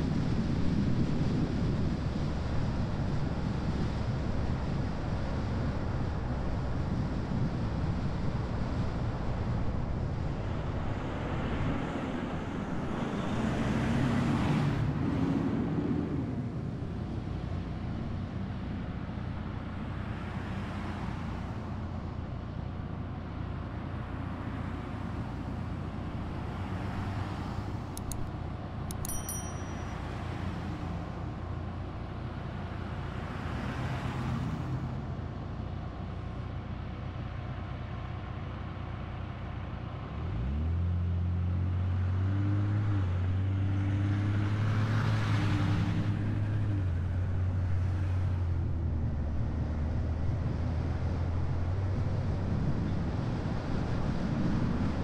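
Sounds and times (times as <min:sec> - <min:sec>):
car engine idling and accelerating: 0:00.0 - 0:55.0
passing cars road noise: 0:00.0 - 0:55.0.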